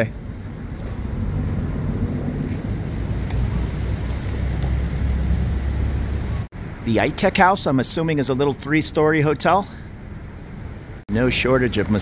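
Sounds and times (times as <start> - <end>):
rumble of city traffic: 0.0 - 12.0.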